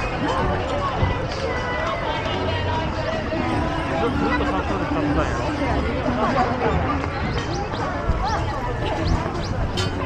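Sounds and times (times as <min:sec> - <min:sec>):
crowd walking and chattering: 0:00.0 - 0:10.0.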